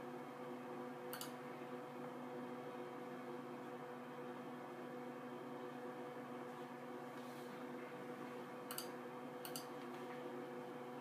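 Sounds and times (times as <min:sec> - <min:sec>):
computer humming: 0:00.0 - 0:11.0
mouse click: 0:01.1 - 0:01.4, 0:08.7 - 0:09.7.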